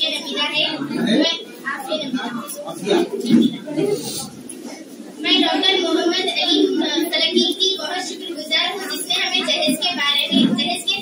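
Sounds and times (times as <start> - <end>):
person talking over a microphone: 0.0 - 11.0.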